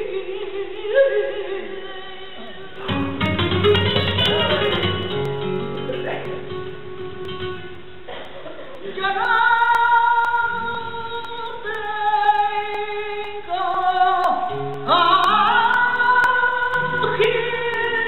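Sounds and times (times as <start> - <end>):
woman singing flamenco: 0.0 - 18.0
flamenco guitar: 2.3 - 18.0.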